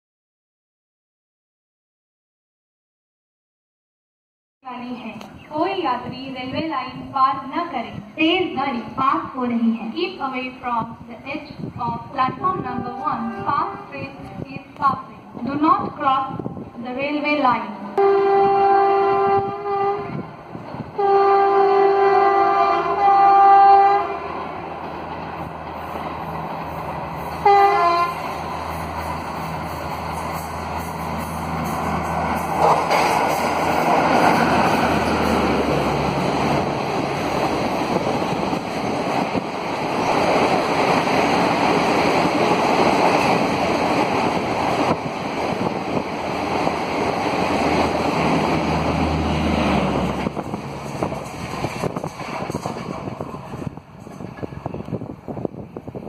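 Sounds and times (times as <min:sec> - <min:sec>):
locomotive horn blasts: 0:12.5 - 0:14.1, 0:17.9 - 0:20.3, 0:21.0 - 0:24.4, 0:27.4 - 0:28.2
train rushing and clattering past: 0:23.0 - 0:56.0.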